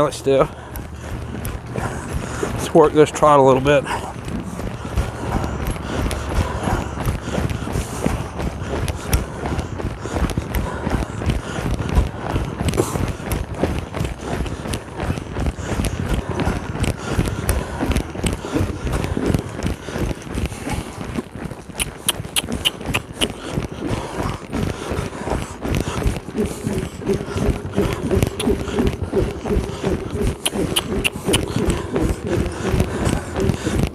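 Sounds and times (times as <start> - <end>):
horse trotting on sand: 0.0 - 33.9
sharp high clicks: 21.8 - 23.4, 30.4 - 31.8.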